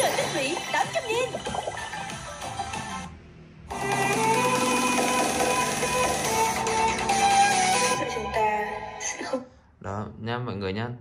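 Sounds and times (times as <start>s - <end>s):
music from laptop speakers: 0.0s - 9.1s.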